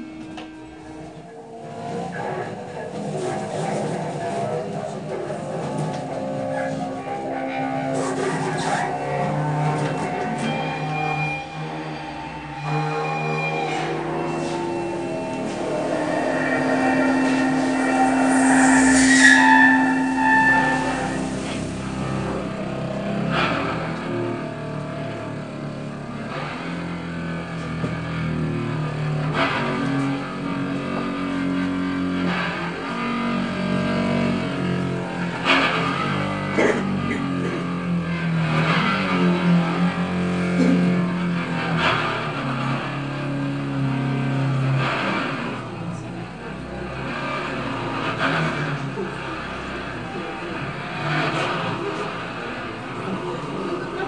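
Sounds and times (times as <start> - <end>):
bowed string drones: 0.0 - 54.0.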